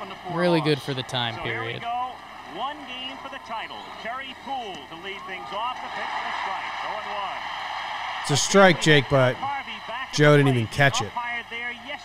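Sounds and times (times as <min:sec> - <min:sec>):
stadium crowd murmur: 0:00.0 - 0:12.0
announcer talking: 0:08.3 - 0:11.2.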